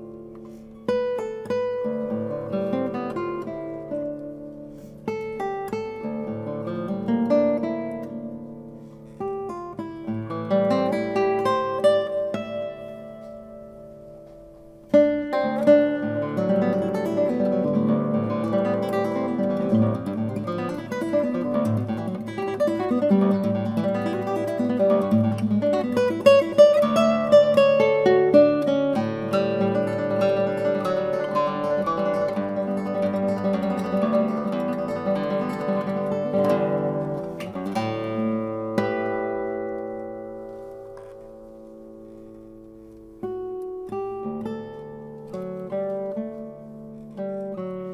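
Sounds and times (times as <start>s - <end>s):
classical guitar plucked notes: 0.0s - 47.9s.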